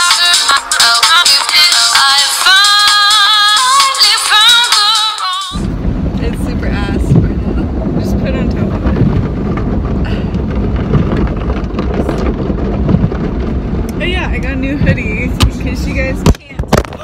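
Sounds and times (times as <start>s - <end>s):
song with singing: 0.0s - 5.7s
car cabin rumble: 5.5s - 17.0s.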